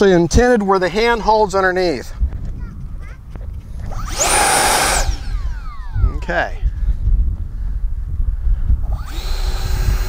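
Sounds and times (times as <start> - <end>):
electric ducted fan whine: 3.2 - 10.0.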